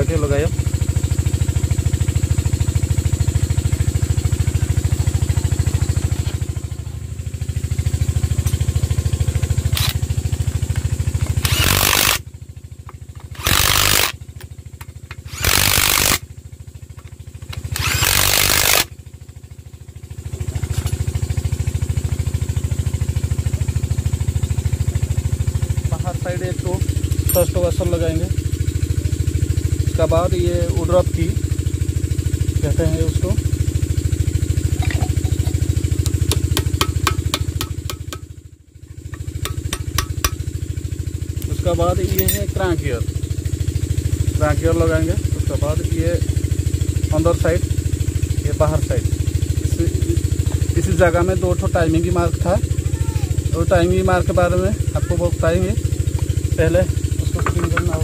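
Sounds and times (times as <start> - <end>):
low machine hum: 0.0 - 58.0
cordless power driver bursts: 11.4 - 12.2, 13.2 - 14.2, 15.2 - 16.2, 17.6 - 18.9.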